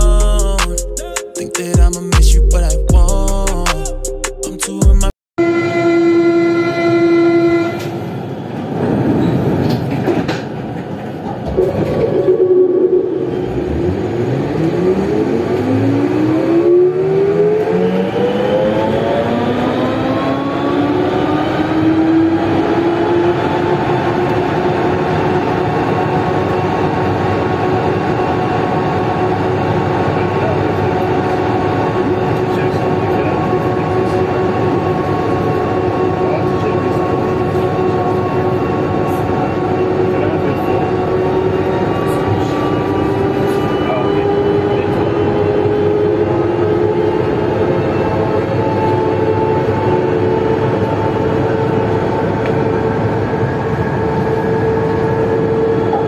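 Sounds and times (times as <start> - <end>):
train traction motor whine: 5.4 - 8.5, 11.5 - 56.0
train running noise: 5.7 - 56.0.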